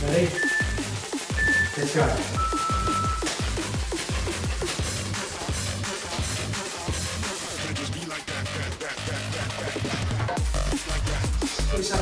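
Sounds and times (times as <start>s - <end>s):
electronic dance music: 0.0s - 12.0s
high timer beeps: 0.3s - 3.6s.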